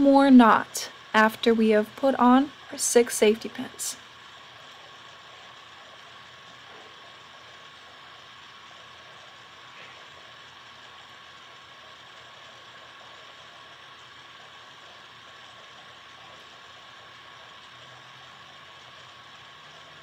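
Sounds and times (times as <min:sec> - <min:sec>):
faint constant high tone: 0:00.0 - 0:20.0.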